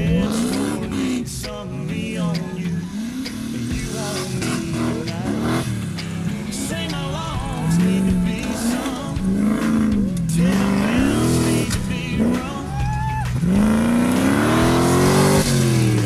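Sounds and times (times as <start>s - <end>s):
country song with singing: 0.0s - 16.0s
off-road engine revving: 0.0s - 16.0s.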